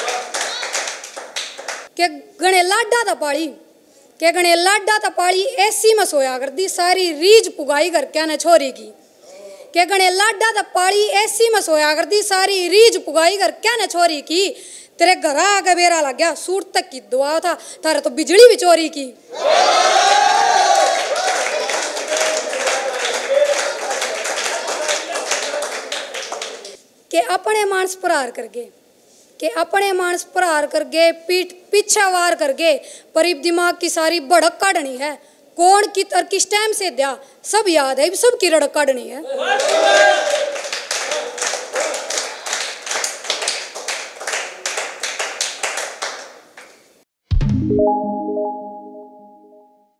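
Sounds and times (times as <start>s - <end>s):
hands clapping: 0.0s - 1.9s, 21.0s - 26.8s, 39.6s - 46.9s
audience cheering and whooping: 19.3s - 25.6s, 39.4s - 42.2s.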